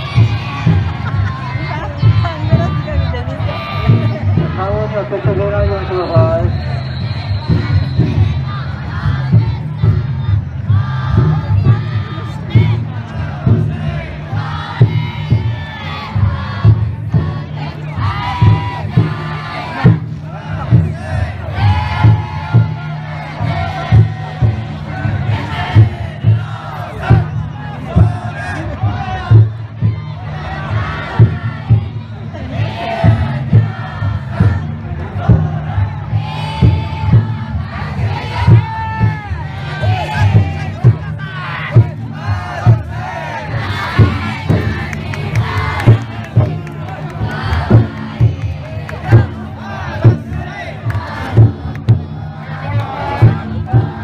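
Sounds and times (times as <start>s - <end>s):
crowd noise: 0.0s - 54.0s
people chanting in unison: 0.0s - 54.0s
taiko drum beating: 0.0s - 54.0s.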